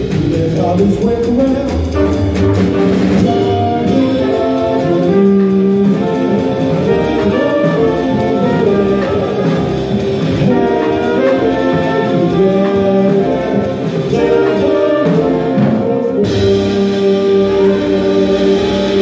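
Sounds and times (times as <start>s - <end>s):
drums: 0.0s - 19.0s
trumpet and saxophone holding notes: 0.0s - 19.0s.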